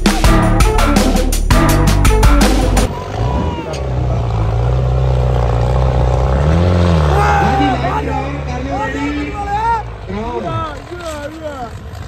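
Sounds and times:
tractor engine under load: 0:03.1 - 0:12.0.

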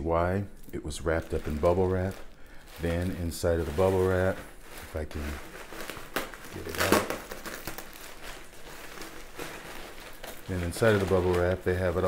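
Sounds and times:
bubble wrap and paper crinkling: 0:00.0 - 0:12.0.

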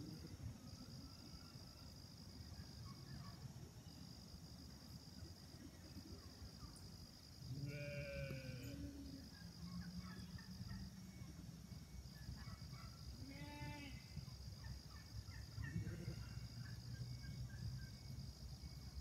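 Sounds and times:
sheep bleating: 0:07.6 - 0:08.7.

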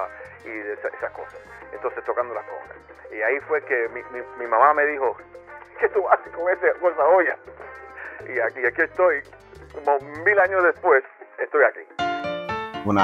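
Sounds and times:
person speaking: 0:00.0 - 0:05.2, 0:05.8 - 0:07.5, 0:08.1 - 0:11.9
background music with bass line: 0:00.0 - 0:11.0.

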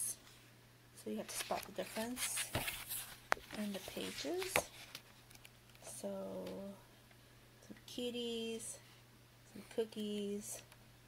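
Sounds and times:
low steady hum: 0:00.0 - 0:11.0
paper pages turning: 0:01.3 - 0:05.1.

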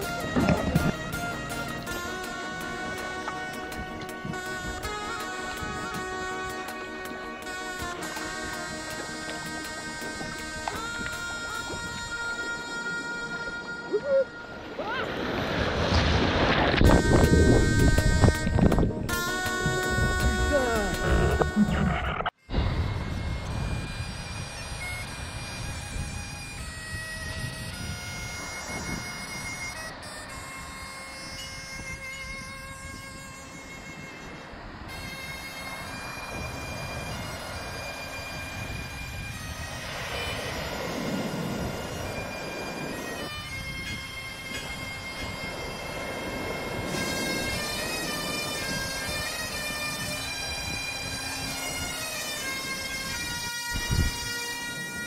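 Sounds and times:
bagpipe music: 0:00.0 - 0:15.8, 0:16.8 - 0:55.0
surf rushing: 0:00.0 - 0:18.4, 0:33.1 - 0:55.0.

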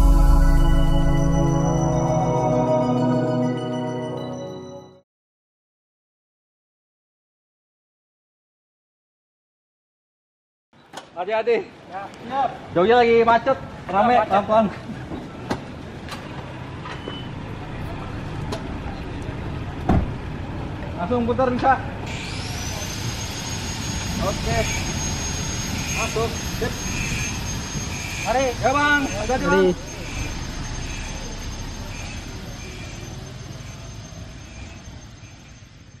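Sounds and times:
car engine rumbling: 0:00.0 - 0:02.2
car engine and tyre noise: 0:13.6 - 0:22.8, 0:23.7 - 0:36.0.

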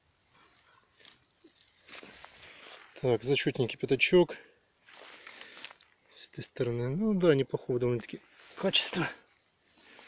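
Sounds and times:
faint rustles: 0:00.1 - 0:03.2, 0:04.8 - 0:06.1.

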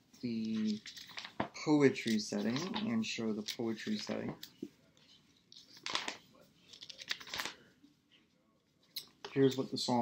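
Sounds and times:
book pages rustling: 0:00.2 - 0:07.9.

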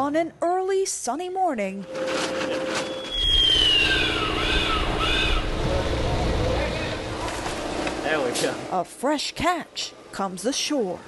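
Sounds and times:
high falling squeal: 0:02.5 - 0:05.6
pump motor rumbling: 0:02.6 - 0:08.7
short squawking calls: 0:03.1 - 0:05.5.

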